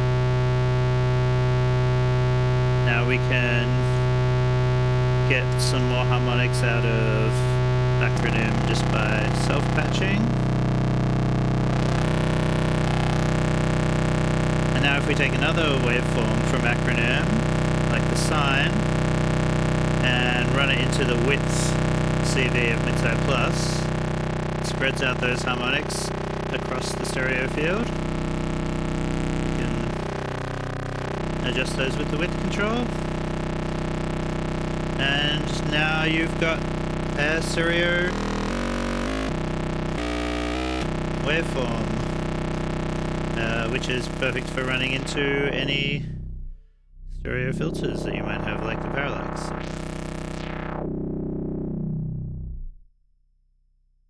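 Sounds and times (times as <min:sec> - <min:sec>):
buzzy synthesizer oscillator drone: 0:00.0 - 0:52.8.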